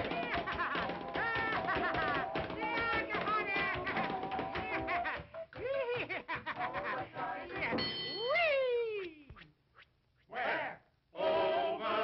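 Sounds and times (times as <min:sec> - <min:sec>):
bell-like ring: 0:07.7 - 0:08.6.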